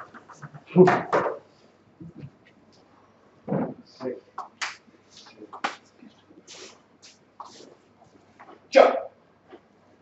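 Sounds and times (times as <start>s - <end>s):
sharp clicks and scuffs: 4.4s - 5.9s.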